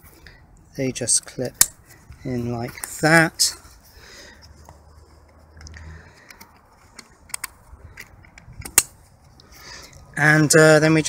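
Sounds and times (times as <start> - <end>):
plastic fitting clicks: 6.3 - 8.9.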